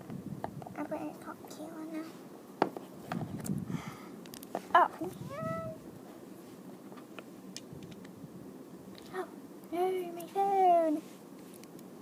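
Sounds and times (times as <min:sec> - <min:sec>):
child's squeaky character voice: 0:05.1 - 0:05.8.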